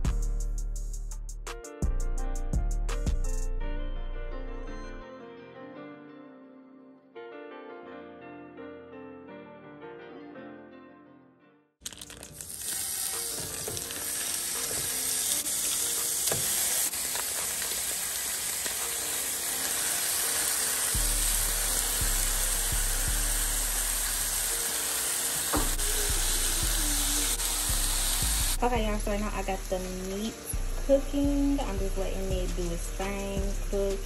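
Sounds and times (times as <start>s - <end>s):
background music: 0.0s - 34.0s
meat sizzling in a frying pan: 11.9s - 34.0s.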